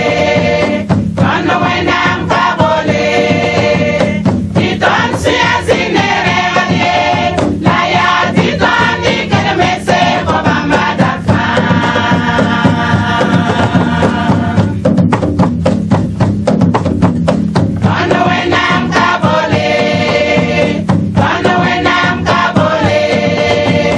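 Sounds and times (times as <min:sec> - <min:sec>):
women's choir singing gospel: 0:00.0 - 0:14.9, 0:17.8 - 0:23.9
hand percussion: 0:00.0 - 0:23.9.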